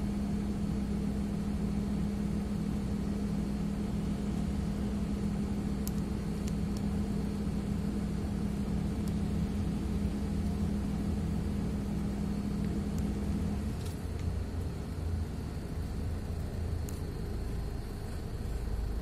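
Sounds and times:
bus engine drone: 0:00.0 - 0:19.0
road rumble: 0:00.0 - 0:19.0.

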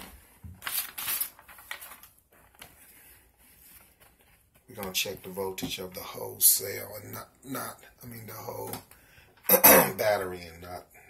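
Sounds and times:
paper rustling and crinkling: 0:00.0 - 0:06.0.

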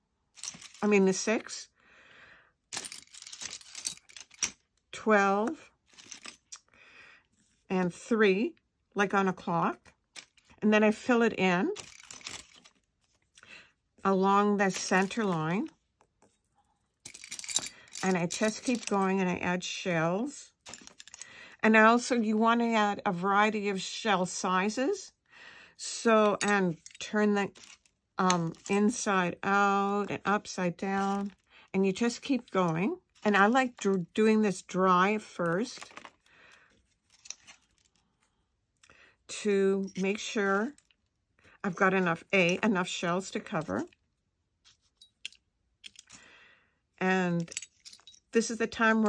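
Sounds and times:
light rustling of shells: 0:02.7 - 0:04.6, 0:05.7 - 0:06.7, 0:11.8 - 0:13.5, 0:14.7 - 0:19.1, 0:20.6 - 0:21.5, 0:35.7 - 0:38.9.

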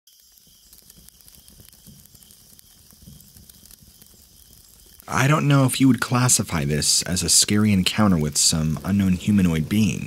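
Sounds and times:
faint steady hiss: 0:00.1 - 0:10.0
soft crackles: 0:00.1 - 0:10.0.

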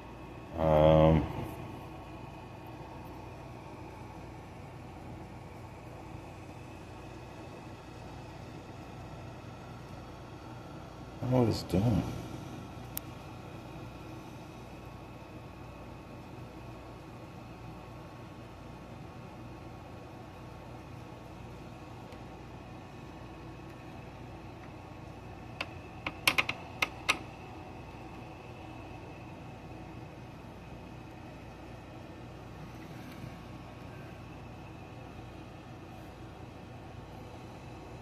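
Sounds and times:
faint hum: 0:00.0 - 0:38.0.

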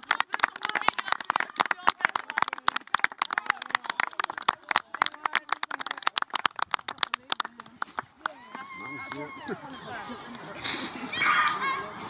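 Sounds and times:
spectators clapping: 0:00.0 - 0:09.6.

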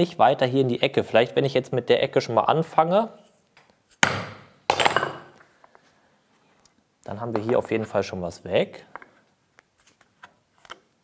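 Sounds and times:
hammer striking chisel: 0:04.0 - 0:05.4.

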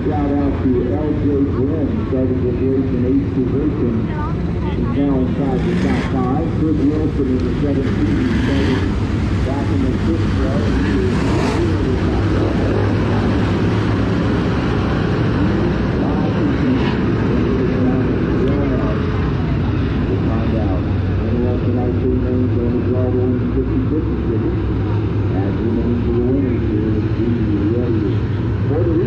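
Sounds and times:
race car engines droning: 0:00.0 - 0:29.0.

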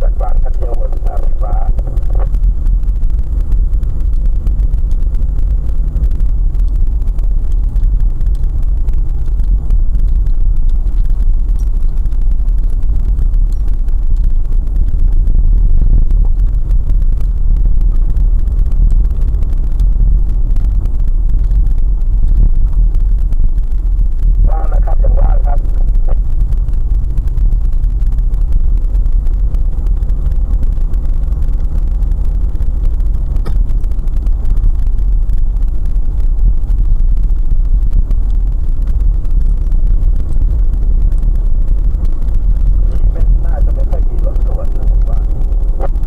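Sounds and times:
person speaking: 0:00.0 - 0:02.3, 0:24.4 - 0:26.2, 0:42.9 - 0:45.9
car rumbling on rough road: 0:00.0 - 0:46.0.

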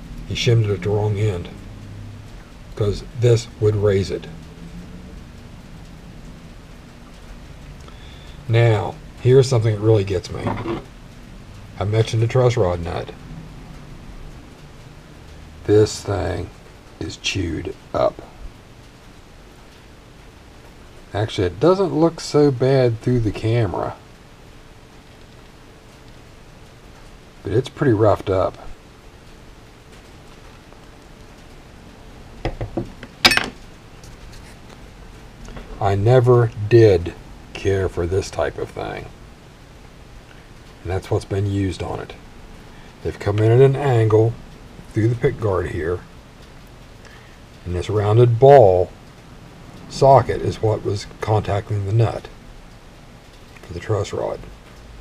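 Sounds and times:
faint hum: 0:00.0 - 0:55.0
low hiss of room tone: 0:00.0 - 0:55.0
soft knocks of handling parts: 0:10.3 - 0:11.0, 0:32.4 - 0:34.8
sharp metal clink: 0:33.2 - 0:33.6.

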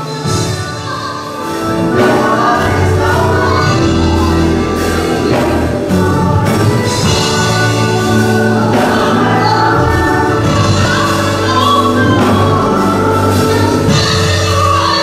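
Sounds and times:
musical accompaniment: 0:00.0 - 0:15.0
woman singing gospel song: 0:00.0 - 0:15.0.

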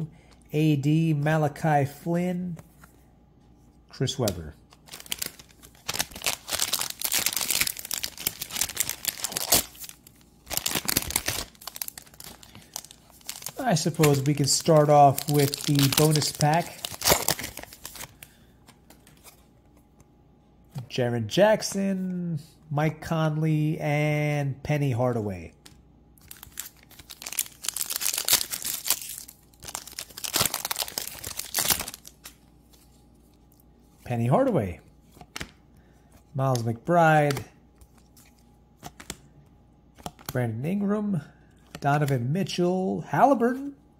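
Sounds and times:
plastic wrapper crinkling: 0:04.7 - 0:19.3, 0:26.2 - 0:33.6.

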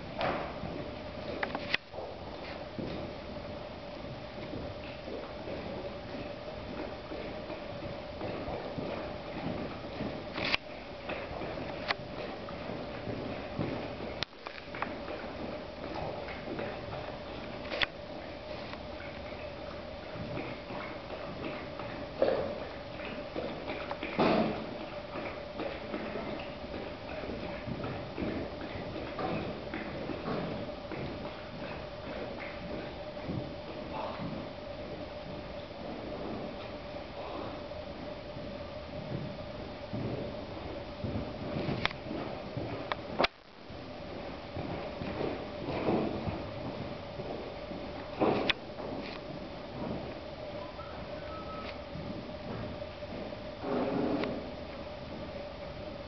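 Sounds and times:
steady faint hum: 0:00.0 - 0:56.0
muffled hoofbeats on dirt: 0:02.0 - 0:56.0.

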